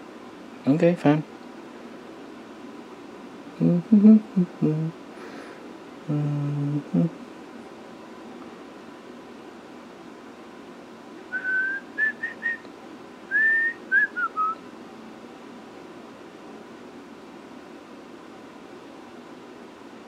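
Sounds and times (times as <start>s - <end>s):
low room hum: 0.0s - 20.0s
person whistling a tune: 11.3s - 12.6s, 13.3s - 14.6s.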